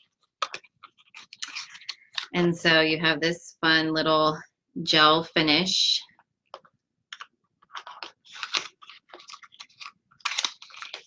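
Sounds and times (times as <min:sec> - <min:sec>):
packaging rustling: 0:00.0 - 0:02.3, 0:07.1 - 0:11.0.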